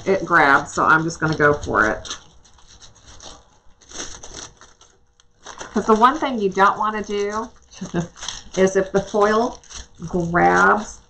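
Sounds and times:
metallic foil crinkling: 0:00.0 - 0:11.0.

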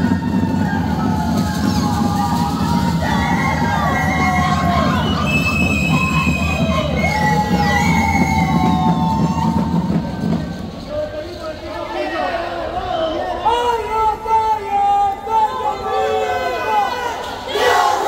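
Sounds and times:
fast drumming: 0:00.0 - 0:11.2.

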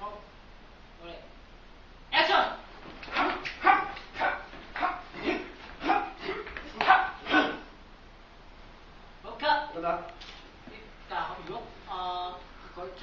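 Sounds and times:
man shouting short yells: 0:02.1 - 0:07.7.

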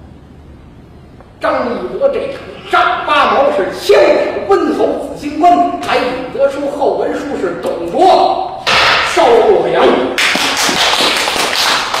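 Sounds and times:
audience applauding: 0:10.2 - 0:12.0.

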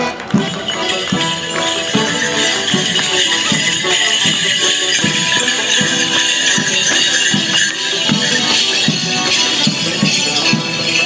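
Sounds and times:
folk dance music with reedy notes: 0:00.0 - 0:11.0
leg bells jingling: 0:00.0 - 0:11.0.

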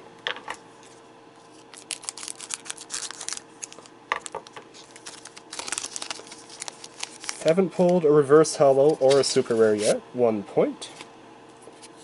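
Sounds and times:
foil pack crinkling and tearing: 0:01.5 - 0:08.0.

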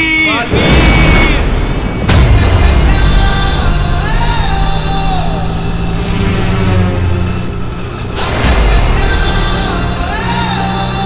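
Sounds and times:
auto-rickshaw engine rumbling: 0:01.4 - 0:11.0.

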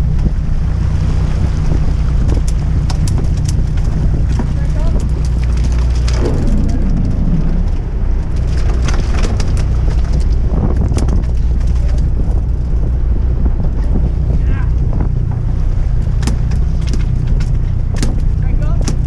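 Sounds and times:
boat engine running: 0:00.0 - 0:19.0
wind buffeting microphone: 0:00.0 - 0:19.0.

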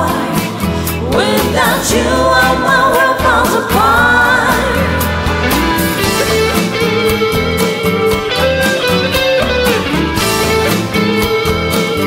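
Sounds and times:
bass: 0:00.0 - 0:12.0
drums: 0:00.0 - 0:12.0
electric guitar lead notes: 0:03.8 - 0:12.0.

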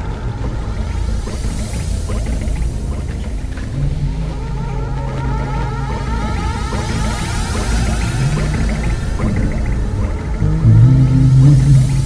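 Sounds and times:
dense low rumble: 0:00.0 - 0:12.0
steady low tone: 0:00.0 - 0:12.0.

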